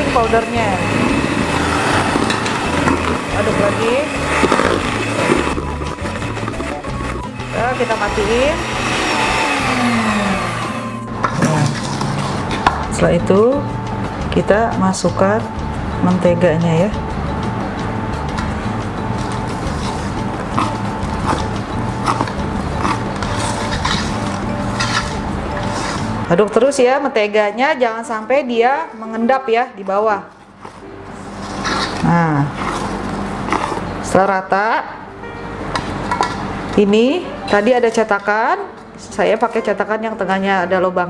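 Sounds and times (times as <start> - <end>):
whisk stirring batter: 0.0 - 10.0
electric hand mixer running: 0.0 - 12.8.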